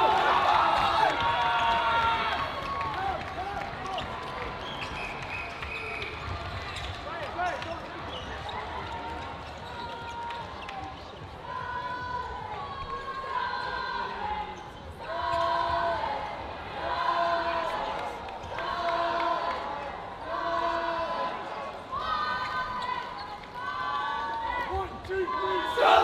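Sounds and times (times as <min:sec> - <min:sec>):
crowd cheering: 0:00.0 - 0:11.8, 0:23.6 - 0:26.0
players calling and shouting: 0:00.0 - 0:26.0.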